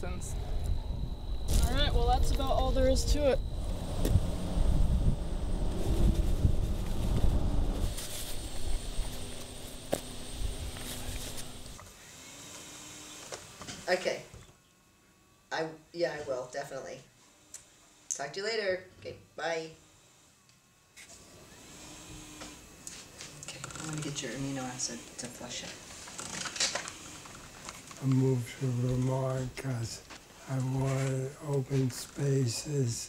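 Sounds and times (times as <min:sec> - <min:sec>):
wind buffeting microphone: 0:00.0 - 0:09.1
faint background noise: 0:12.8 - 0:33.0.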